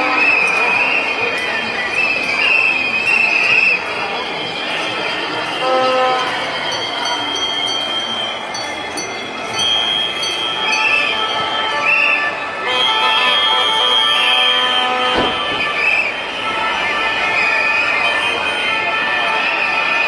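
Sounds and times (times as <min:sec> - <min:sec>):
whistles blowing: 0:00.0 - 0:05.7, 0:09.6 - 0:18.7
murmur of crowd: 0:00.0 - 0:20.0.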